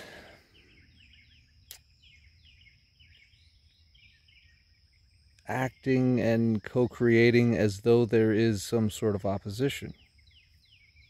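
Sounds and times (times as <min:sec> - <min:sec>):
small birds chirping: 0:00.0 - 0:11.0
sharp click: 0:01.6 - 0:01.9.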